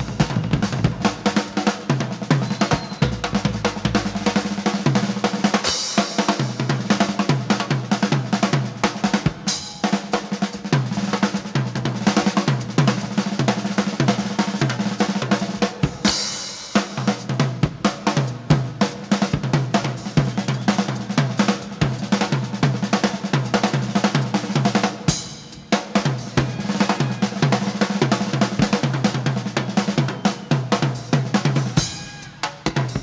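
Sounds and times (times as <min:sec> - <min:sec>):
drum kit solo: 0:00.0 - 0:33.0.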